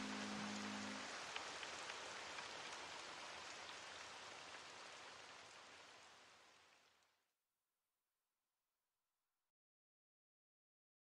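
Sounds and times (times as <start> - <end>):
low sustained music notes: 0.0 - 1.4
rain with drop ticks: 0.0 - 7.2.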